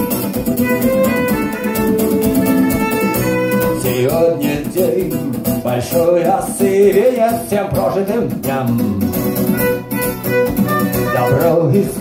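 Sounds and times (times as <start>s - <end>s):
violin melody: 0.0s - 4.1s, 9.4s - 11.7s
strummed electric guitar: 0.0s - 12.0s.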